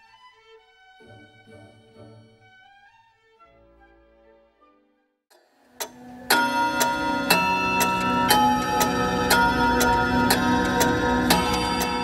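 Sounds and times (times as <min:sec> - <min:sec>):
clock bell striking: 0:05.8 - 0:12.0
clock ticking: 0:05.8 - 0:12.0.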